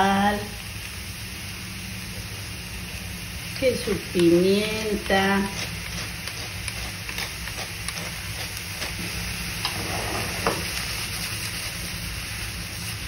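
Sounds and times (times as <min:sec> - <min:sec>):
mushrooms sizzling in frying pan: 0:00.0 - 0:13.0.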